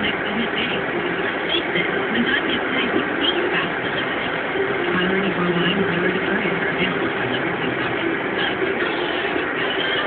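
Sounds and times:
car road and engine noise: 0.0 - 10.0
faint indistinct speech: 0.0 - 10.0.

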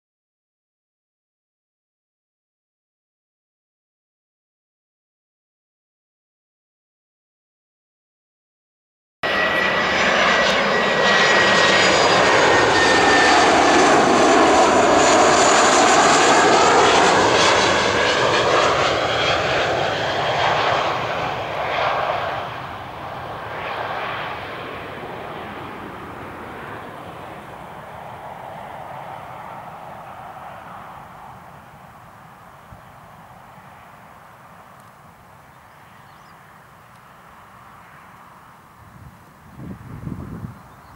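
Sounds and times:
jet airliner passing overhead: 9.2 - 40.9.

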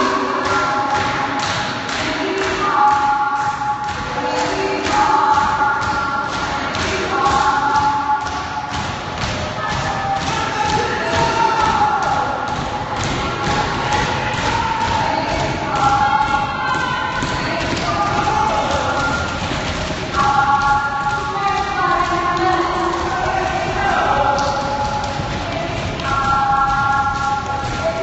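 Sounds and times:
rhythmic thumps: 0.0 - 28.0
voices holding long tones: 0.0 - 28.0.

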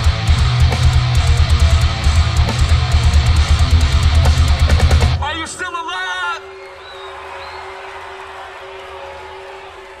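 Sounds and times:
crowd noise: 4.6 - 10.0
man shouting into a microphone: 5.2 - 6.5.

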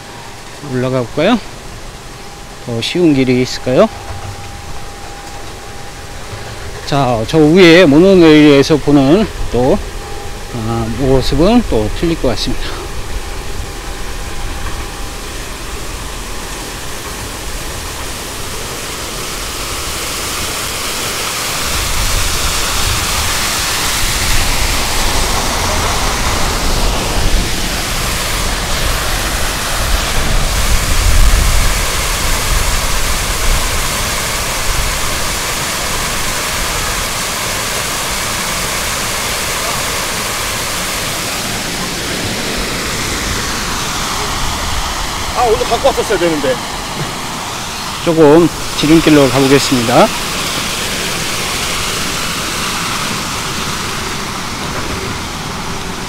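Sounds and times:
wind rushing over microphone: 21.6 - 35.4.

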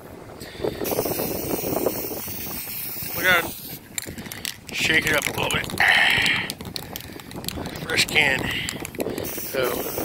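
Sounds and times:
wind buffeting microphone: 0.0 - 10.0
spray can hissing: 0.8 - 3.8, 9.2 - 10.0.

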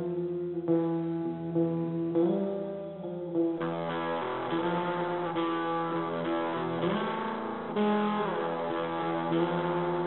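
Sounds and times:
instrumental metal guitar: 0.0 - 10.0.

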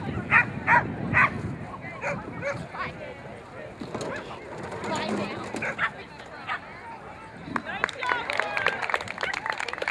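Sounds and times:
dog barking: 0.3 - 1.4, 2.0 - 2.6.

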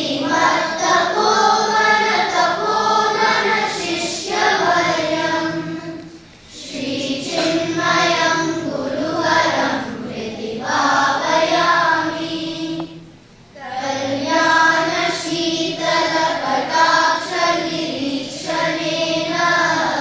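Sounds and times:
children chanting in unison: 0.0 - 20.0.

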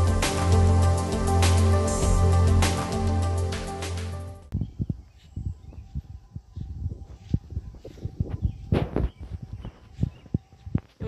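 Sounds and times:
background music: 0.0 - 4.5
footsteps on grass: 4.8 - 11.0.

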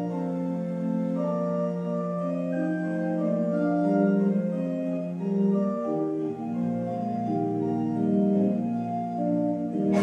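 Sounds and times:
church organ playing chords: 0.0 - 10.0.

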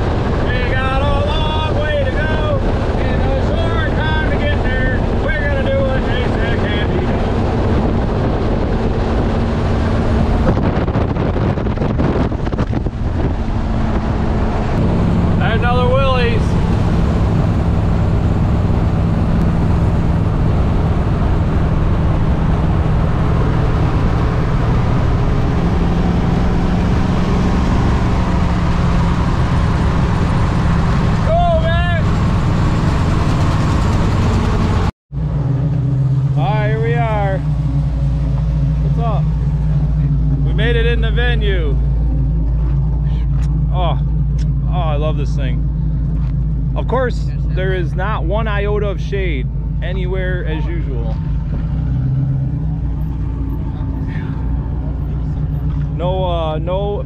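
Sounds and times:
road noise: 0.0 - 57.0
truck engine hum: 0.0 - 57.0
voices: 0.4 - 7.3, 15.4 - 16.8, 31.2 - 32.1, 36.4 - 37.5, 38.7 - 45.7, 46.7 - 51.3, 53.0 - 57.0
wind rushing in: 4.2 - 31.4.

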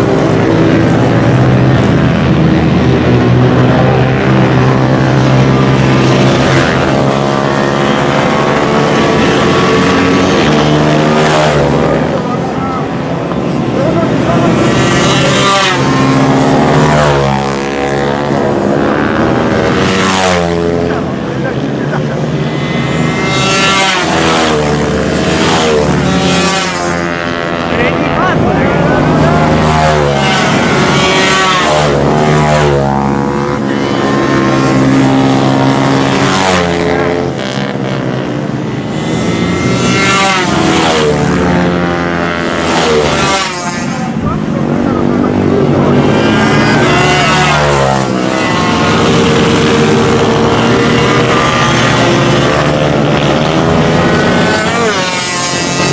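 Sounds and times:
minibike engines revving past: 0.0 - 55.9.

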